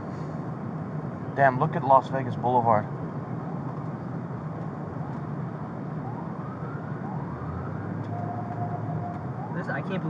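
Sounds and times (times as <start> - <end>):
low engine hum: 0.0 - 10.0
emergency sirens wailing: 5.5 - 10.0.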